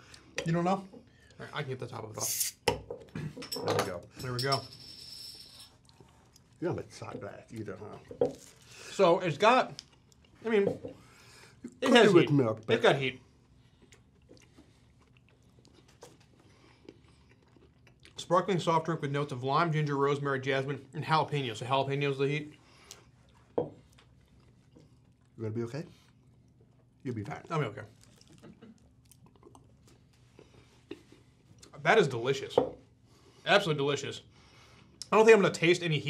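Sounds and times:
person chewing cookie: 5.7 - 6.6, 9.8 - 10.4, 13.5 - 18.2, 22.5 - 25.4, 26.0 - 31.7.

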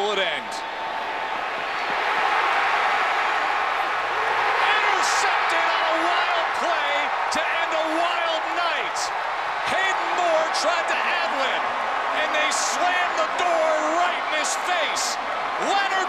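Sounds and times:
shouts from crowd: 0.0 - 16.0
stadium crowd roaring: 0.0 - 16.0.

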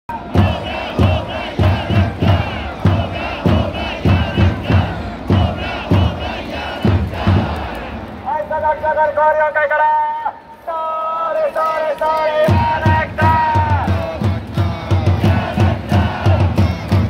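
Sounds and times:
heavy low beat: 0.1 - 8.1, 12.5 - 17.0
stadium crowd singing in unison: 0.1 - 8.3, 10.8 - 17.0.

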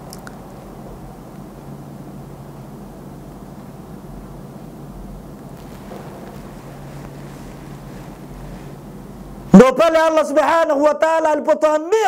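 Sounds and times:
faint hiss: 0.0 - 9.9
low room hum: 0.0 - 12.0.

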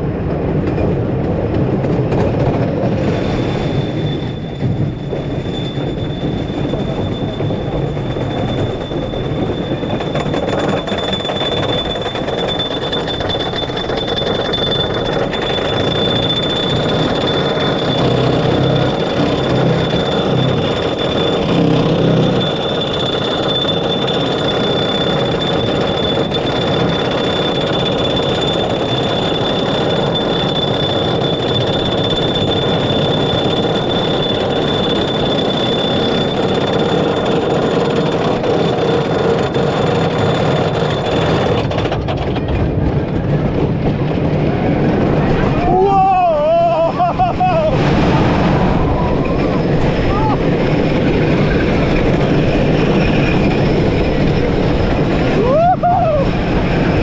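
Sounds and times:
roller coaster chain lift rumble: 0.0 - 57.0
high mechanical whine: 1.4 - 57.0.

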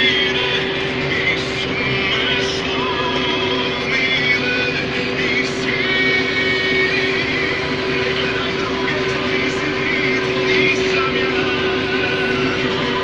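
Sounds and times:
combine harvester droning: 0.0 - 13.0
faint music: 0.0 - 13.0.

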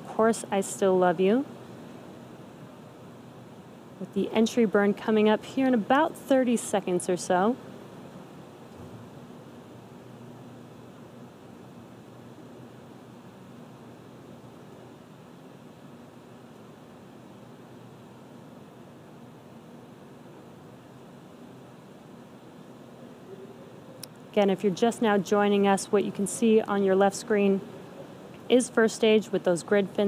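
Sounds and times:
faint low hum: 0.0 - 30.0.

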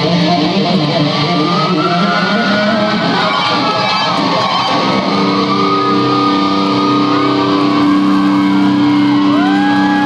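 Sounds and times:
crowd screaming: 0.9 - 10.0
electric guitar sustained note: 4.7 - 10.0.

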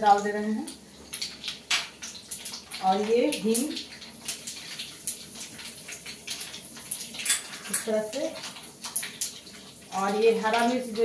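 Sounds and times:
seeds sizzling in hot oil: 0.0 - 11.0.

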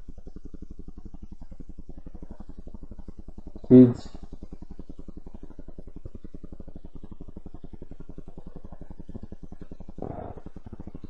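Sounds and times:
pulsing low buzzing hum: 0.0 - 11.0.

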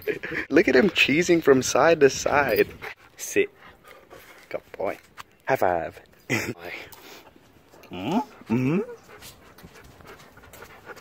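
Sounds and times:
dog panting: 2.8 - 4.5, 7.6 - 11.0.

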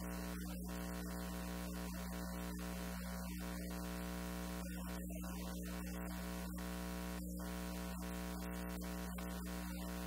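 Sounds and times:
electrical hum with buzzing: 0.0 - 10.0.

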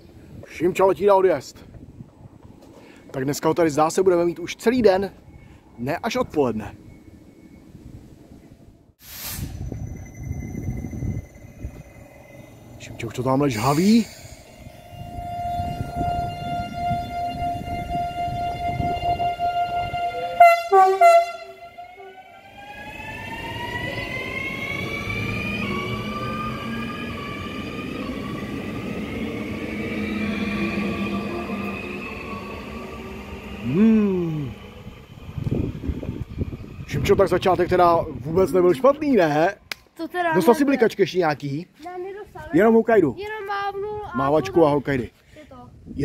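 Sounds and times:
train electric whine: 9.5 - 39.4
traction motors whine rising in pitch: 9.6 - 20.4, 21.4 - 39.4.

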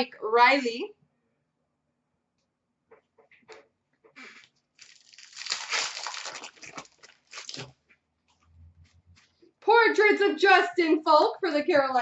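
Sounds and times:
card pack wrapper crinkling: 4.8 - 7.8.

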